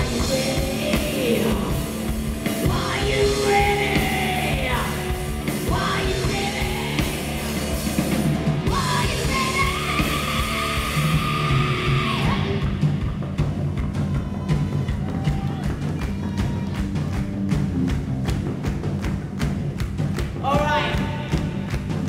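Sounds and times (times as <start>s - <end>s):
person singing: 0.0s - 7.7s, 8.7s - 12.7s
heavy metal band playing: 0.0s - 19.0s.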